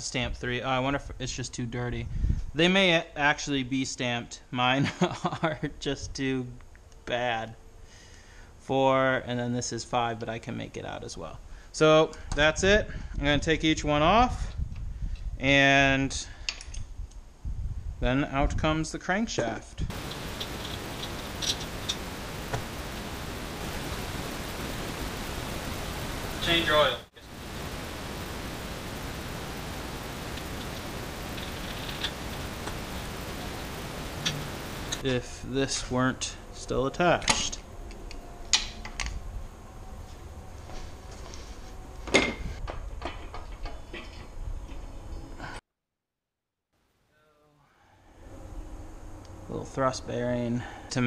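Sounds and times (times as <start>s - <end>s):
parts clicking and knocking: 19.9s - 22.7s
steady hiss: 19.9s - 42.6s.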